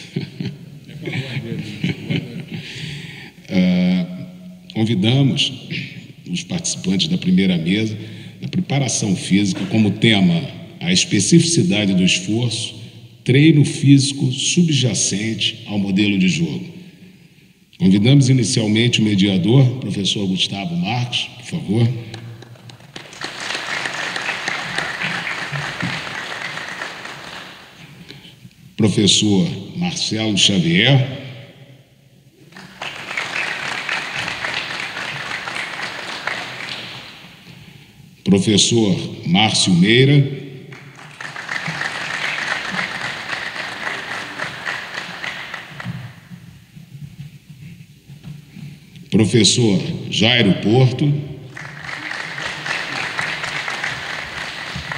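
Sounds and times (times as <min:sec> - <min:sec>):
audience applauding: 0:22.4 - 0:28.0, 0:32.4 - 0:37.5, 0:40.7 - 0:46.4, 0:51.5 - 0:54.9.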